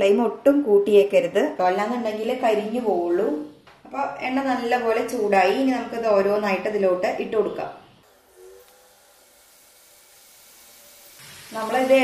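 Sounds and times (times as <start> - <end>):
dough frying in hot oil: 8.1 - 12.0.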